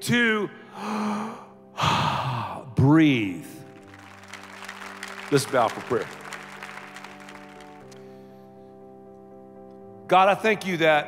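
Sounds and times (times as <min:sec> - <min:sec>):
man breathing into a microphone: 0:08.0 - 0:08.8.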